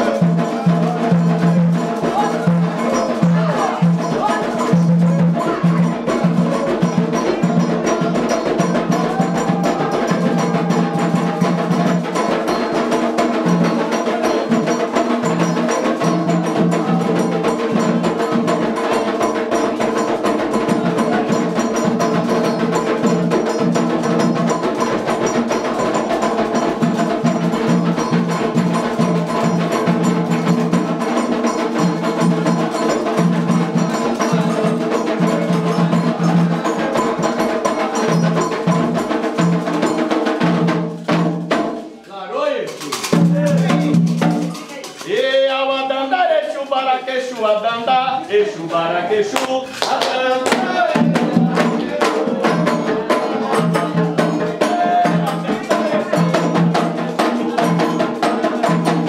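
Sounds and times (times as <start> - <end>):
struck bell: 0.0 - 40.5
hand drums: 0.0 - 42.0, 42.6 - 59.0.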